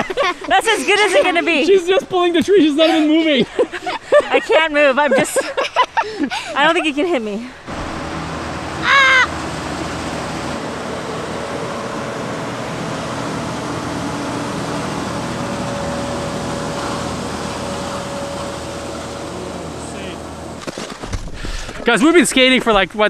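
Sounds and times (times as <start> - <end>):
snow clearing machine engine: 0.0 - 4.4, 5.1 - 22.8
short high-pitched shout: 8.8 - 9.3.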